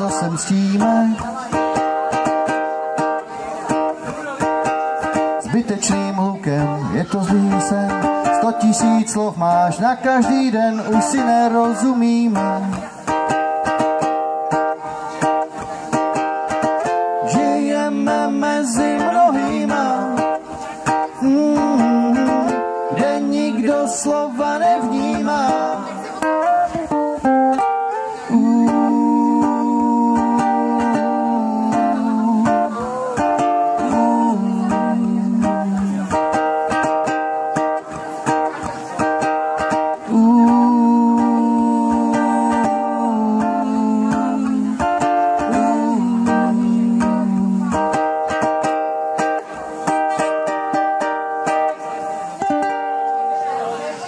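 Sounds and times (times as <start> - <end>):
strummed ukulele: 0.0 - 54.0.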